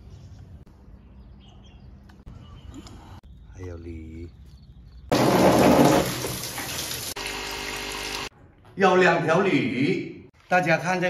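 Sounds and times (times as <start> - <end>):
water pouring into plastic tub: 5.1 - 8.2.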